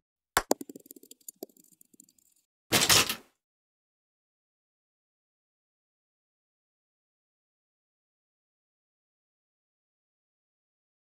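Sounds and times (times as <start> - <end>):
small object bouncing on hard surface: 0.4 - 2.4.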